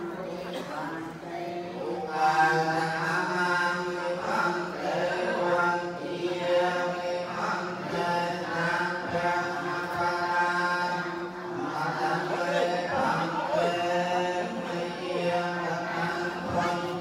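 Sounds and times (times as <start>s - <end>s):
monks chanting: 0.0s - 17.0s.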